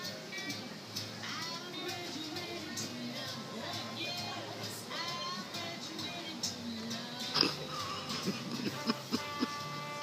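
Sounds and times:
faint background music: 0.0 - 10.0
people laughing: 8.1 - 9.6.

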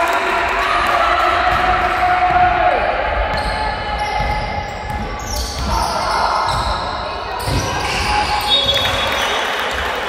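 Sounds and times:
players' voices echoing: 0.0 - 10.0.

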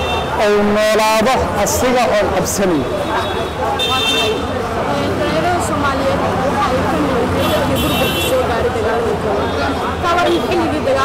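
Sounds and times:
busy street noise: 0.0 - 11.0.

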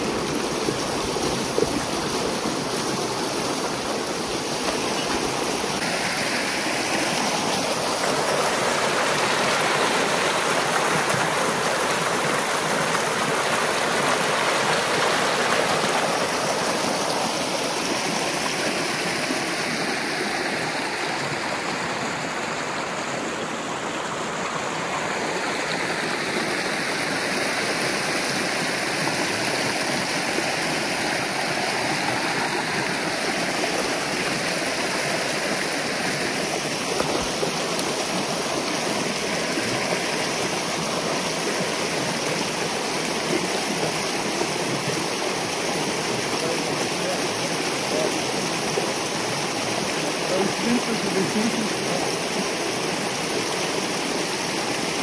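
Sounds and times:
water gushing through dam breach: 0.0 - 55.0.

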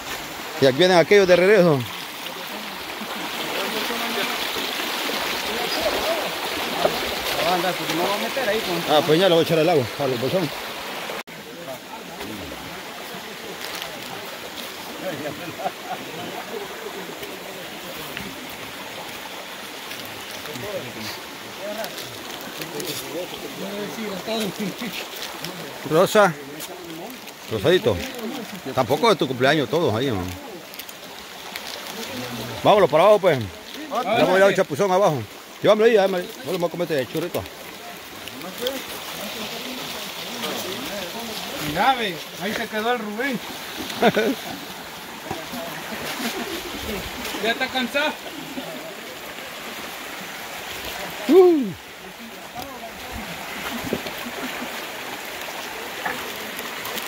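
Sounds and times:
men's voices chattering: 0.0 - 57.0
stream running over rocks: 0.0 - 57.0
men talking: 0.4 - 19.0, 20.1 - 30.8, 31.8 - 54.8.

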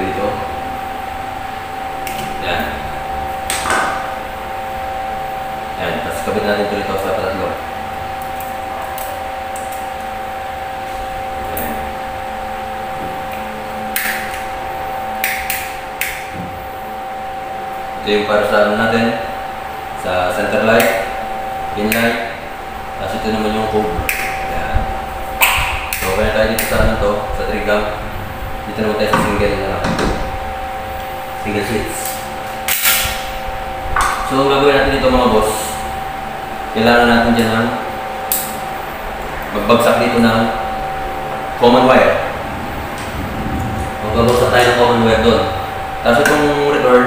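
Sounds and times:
steady hum: 0.0 - 47.0.

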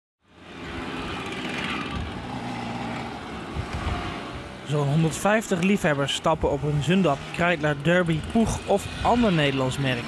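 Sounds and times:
mopeds buzzing past: 0.3 - 4.6.

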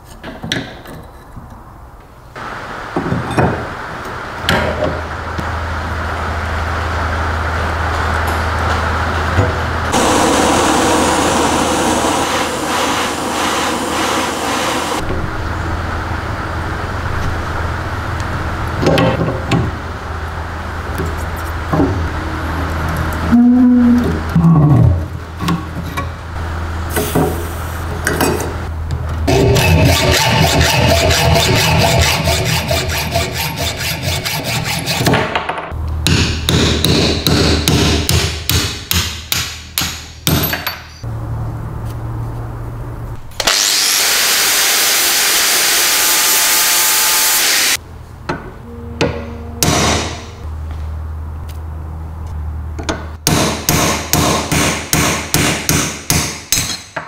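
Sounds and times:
blowtorch hissing: 9.9 - 15.0
power tool running: 9.9 - 15.1, 43.4 - 47.8.

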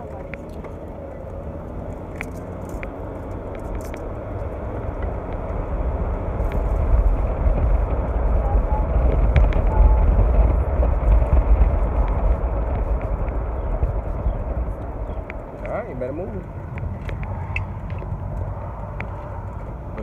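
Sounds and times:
car cabin road and wind noise: 0.0 - 20.0.

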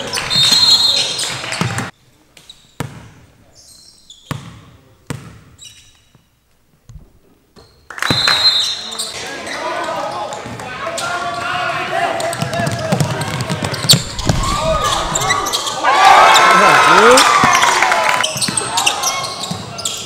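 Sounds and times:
whistle: 0.3 - 1.1, 8.0 - 8.8
crowd shouting and cheering: 9.2 - 19.4.

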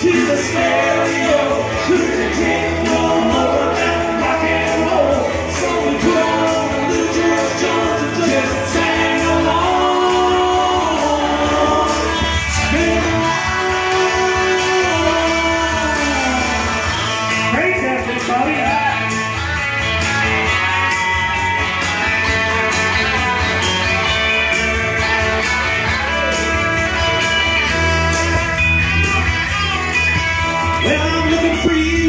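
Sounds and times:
electric guitar through small amp: 0.0 - 32.0.

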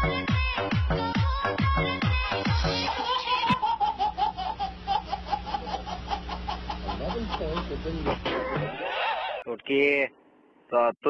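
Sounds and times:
electronic dance music: 0.0 - 3.1
baby laughing: 2.7 - 9.5.

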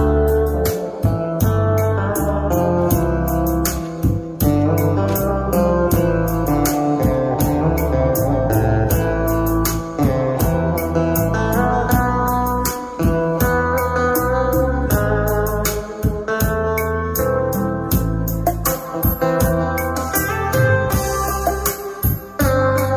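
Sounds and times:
music with heavy bass: 0.0 - 22.9.

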